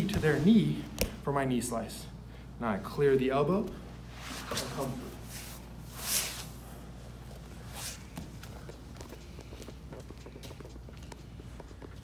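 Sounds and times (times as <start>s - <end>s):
bodies shifting on foam mat: 0.0s - 1.2s
fabric swishing: 4.1s - 6.6s.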